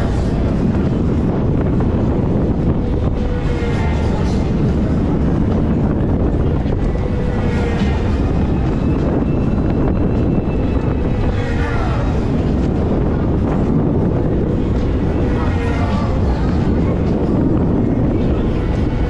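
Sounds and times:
faint voices: 0:00.0 - 0:19.0
music: 0:00.0 - 0:19.0
wind buffeting microphone: 0:00.0 - 0:19.0.

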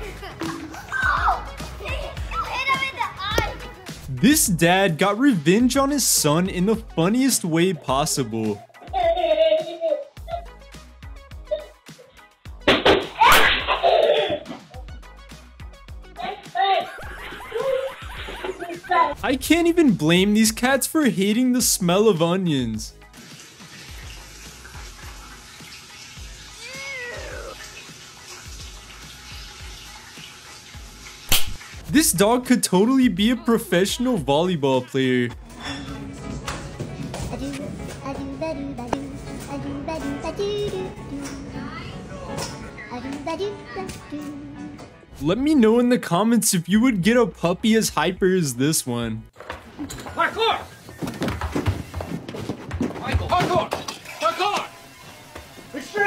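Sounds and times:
background music: 0:00.0 - 0:56.0
child calling out: 0:00.9 - 0:03.4, 0:26.6 - 0:27.6
cat meowing: 0:26.6 - 0:27.6.

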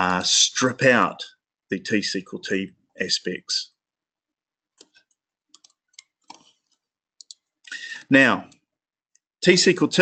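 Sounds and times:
computer mouse clicking: 0:04.8 - 0:07.5.

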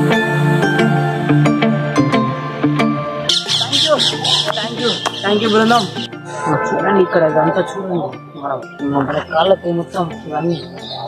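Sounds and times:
background music: 0:00.0 - 0:11.0
squawking chattering call: 0:03.3 - 0:08.3.

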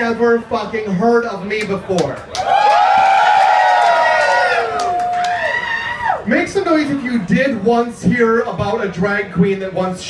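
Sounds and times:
people clapping: 0:01.6 - 0:05.7
audience cheering and whooping: 0:02.3 - 0:07.0.

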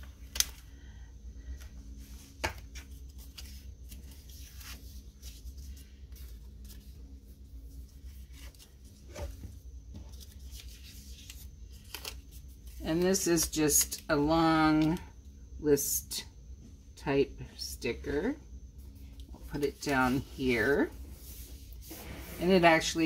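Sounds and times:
faint low hum: 0:00.0 - 0:23.0
paper pages rustling: 0:02.1 - 0:14.0.

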